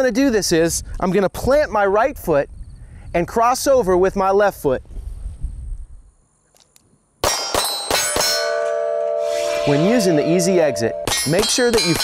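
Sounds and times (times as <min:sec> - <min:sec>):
pistol shots: 0:07.2 - 0:08.5
metallic ringing tone: 0:07.3 - 0:12.0.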